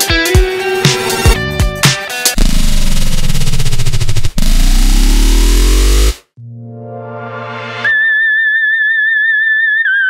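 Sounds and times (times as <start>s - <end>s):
distorted noise music: 2.3s - 6.3s.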